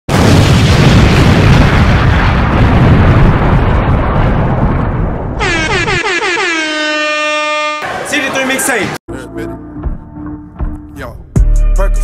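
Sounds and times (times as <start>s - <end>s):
air horn blasts: 5.4s - 8.0s.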